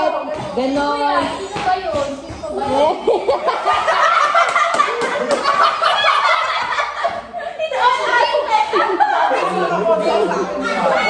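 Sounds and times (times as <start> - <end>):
group of people laughing: 2.9 - 11.0.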